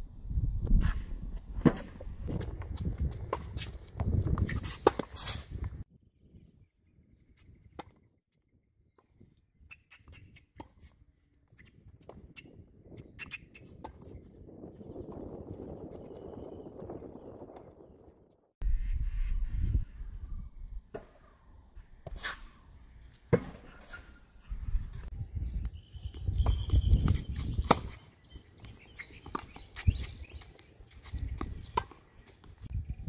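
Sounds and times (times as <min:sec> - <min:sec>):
wind rumbling on microphone: 0:00.0 - 0:22.8, 0:24.3 - 0:33.0.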